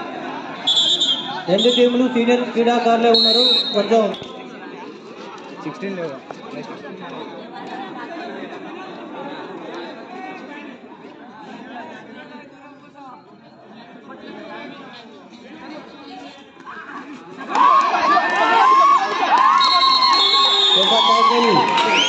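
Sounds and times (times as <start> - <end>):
crowd shouting and cheering: 0.0 - 4.8, 17.0 - 22.0
crowd chattering: 0.0 - 22.0.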